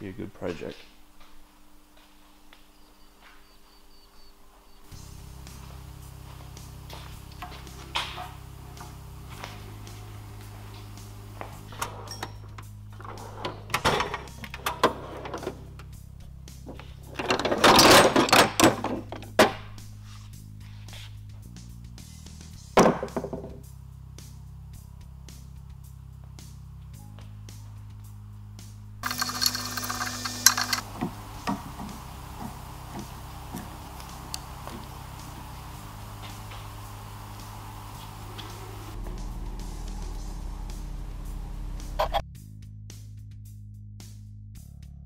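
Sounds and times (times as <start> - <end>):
background music: 4.9 - 45.0
steel drawers opening and shutting: 11.6 - 15.9, 16.7 - 19.8, 29.0 - 34.6
tools being rummaged through: 17.1 - 19.4, 29.0 - 30.9.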